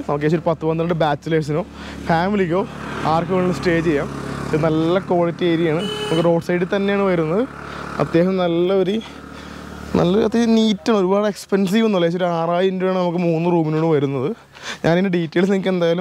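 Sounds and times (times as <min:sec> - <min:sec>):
man talking: 0:00.0 - 0:09.2, 0:09.9 - 0:16.0
motorbike engine passing: 0:00.0 - 0:11.2.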